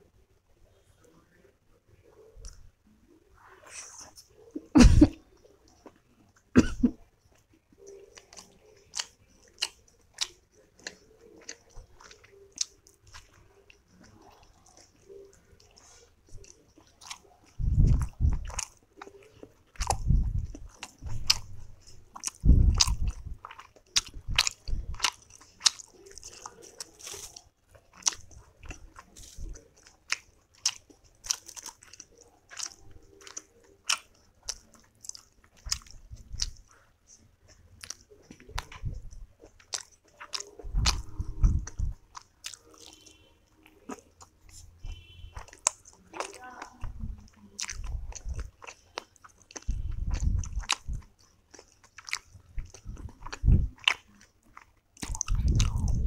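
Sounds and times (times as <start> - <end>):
low chewing thuds: 7.3 - 56.0
wet mouth clicks and smacks: 43.8 - 56.0.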